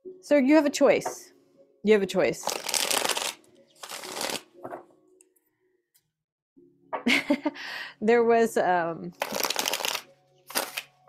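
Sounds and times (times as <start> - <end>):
cards being shuffled: 2.4 - 4.5, 9.2 - 11.0.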